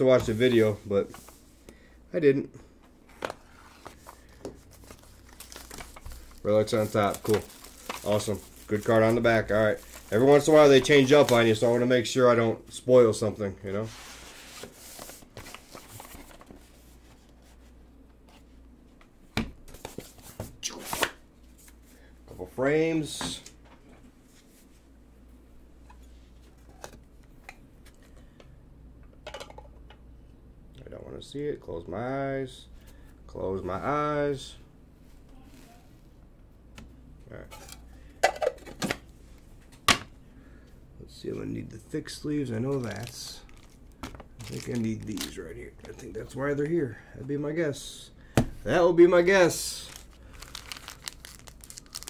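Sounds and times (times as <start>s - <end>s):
low steady hum: 0.0s - 52.0s.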